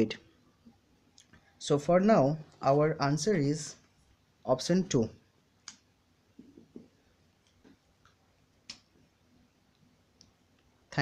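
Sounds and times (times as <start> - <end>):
faint sharp clicks: 5.6 - 5.9, 7.4 - 8.9.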